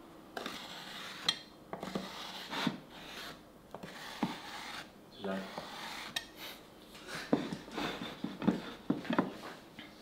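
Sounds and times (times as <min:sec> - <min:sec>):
knife scraping chocolate: 0:00.4 - 0:06.6.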